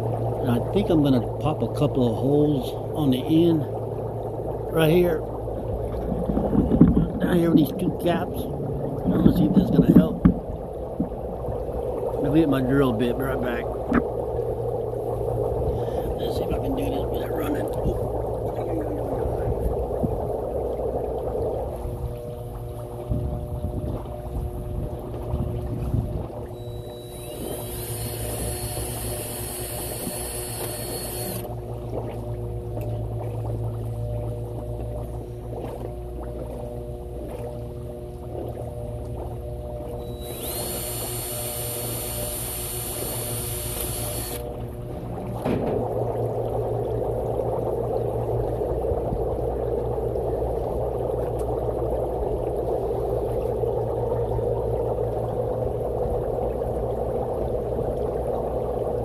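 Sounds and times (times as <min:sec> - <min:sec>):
air bubbling through water: 0:00.0 - 0:37.0, 0:37.7 - 0:59.0
steady machine hum: 0:00.0 - 0:59.0
cordless drill whining: 0:26.9 - 0:31.5, 0:40.2 - 0:44.4.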